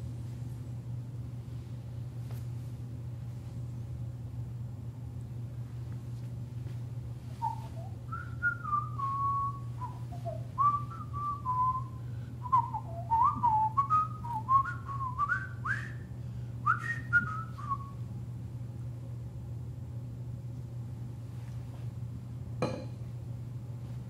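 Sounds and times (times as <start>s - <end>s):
person whistling a tune: 7.4s - 18.0s.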